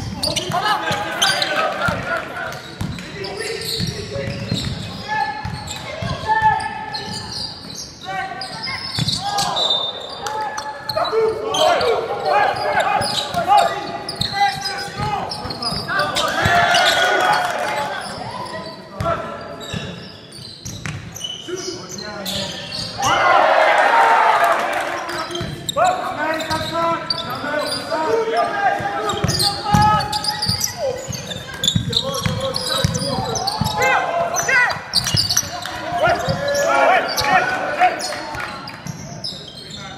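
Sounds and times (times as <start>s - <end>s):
players calling: 0.0s - 20.0s, 21.4s - 39.9s
sneakers squeaking: 0.0s - 23.4s, 25.0s - 39.9s
people shouting: 23.0s - 24.8s.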